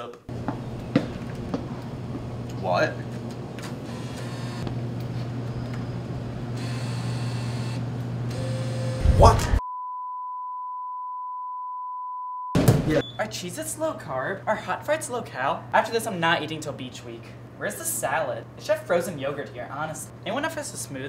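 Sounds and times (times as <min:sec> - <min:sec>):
censor bleep tone: 0:08.5 - 0:13.2.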